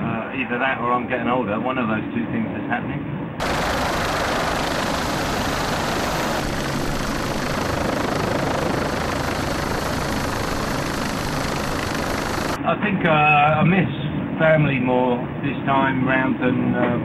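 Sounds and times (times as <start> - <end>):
wind: 0.0 - 17.0
helicopter rushing noise: 3.4 - 12.6.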